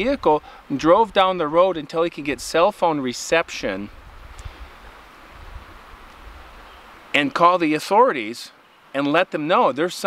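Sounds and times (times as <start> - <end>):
wind on microphone: 0.0 - 7.0.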